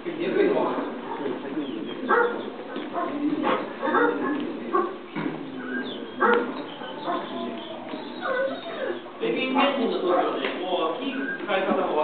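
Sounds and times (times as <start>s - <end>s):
dog barking and yelping: 2.0s - 5.0s, 6.2s - 9.2s.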